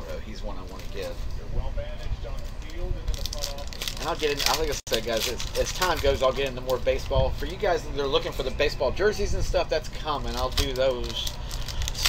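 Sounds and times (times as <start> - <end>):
foil card pack crinkling: 0.5 - 1.2, 2.2 - 7.7, 10.1 - 12.0.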